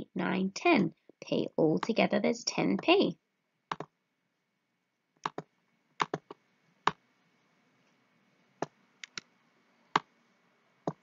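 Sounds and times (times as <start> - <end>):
computer mouse clicks: 3.7 - 3.9, 5.2 - 7.0, 8.6 - 9.3.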